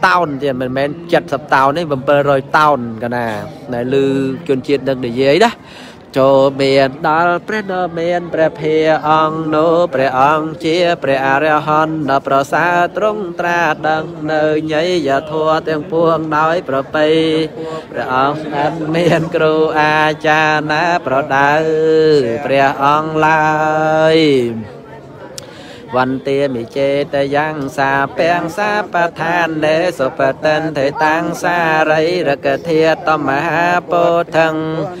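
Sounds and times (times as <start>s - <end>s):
person chanting in sing-song pitch: 0.0s - 24.7s, 25.8s - 35.0s.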